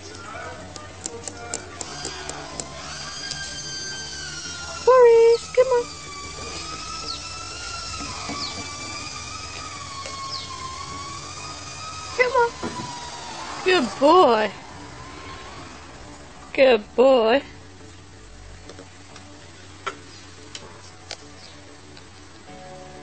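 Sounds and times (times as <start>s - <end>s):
quick run of clicks: 0.0s - 4.8s
high wavering whistle-like tone: 3.2s - 16.5s.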